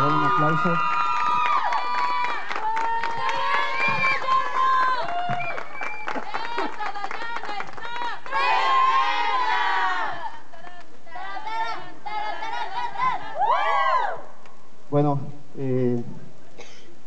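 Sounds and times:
crowd cheering together: 0.0 - 14.4
hand claps: 1.4 - 8.1
women cheering and whooping: 13.3 - 14.4.

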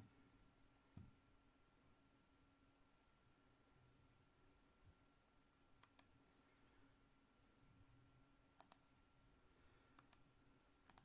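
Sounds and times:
computer mouse double-clicks: 5.8 - 6.1, 8.6 - 8.8, 10.0 - 10.2.

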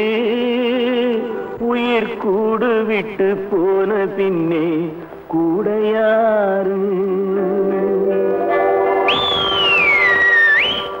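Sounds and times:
high whistle-like tone sliding: 9.0 - 11.0.

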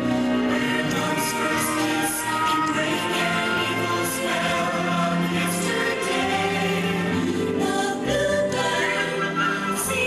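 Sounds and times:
choir singing sustained notes: 0.0 - 10.0
stage-show music accompaniment: 0.0 - 10.0.

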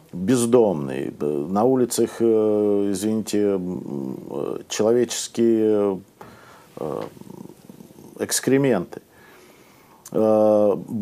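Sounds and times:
man's hesitation murmur: 6.8 - 8.4.

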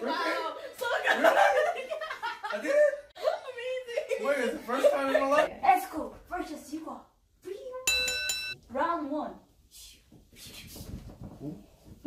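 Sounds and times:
bell struck: 7.9 - 8.6.

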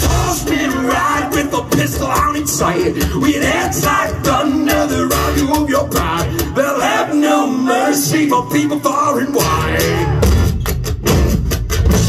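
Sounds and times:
live rock band playing: 0.0 - 7.0, 8.0 - 12.0
drum kit beats: 0.0 - 12.0.

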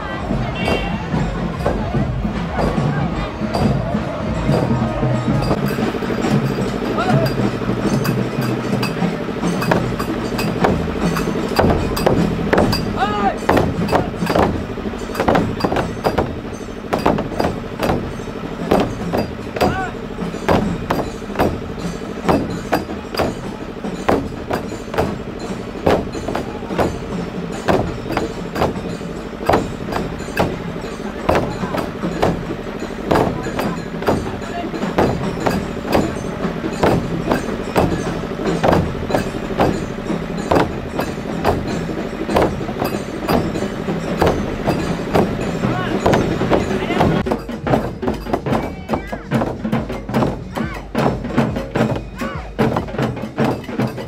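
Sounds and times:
frame drums beating: 0.0 - 54.0.

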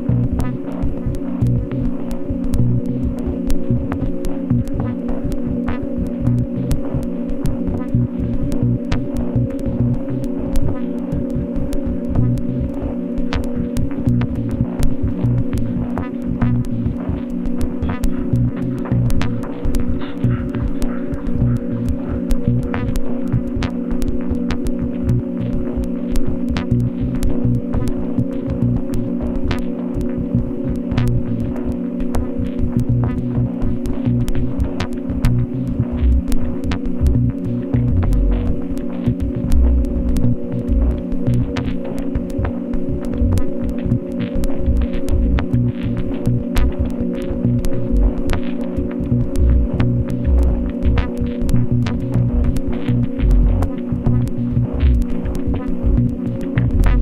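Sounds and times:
ambient electronic music: 0.0 - 57.0.

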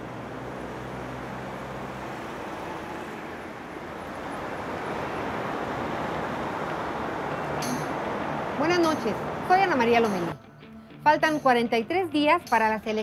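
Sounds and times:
passing cars: 0.0 - 13.0.

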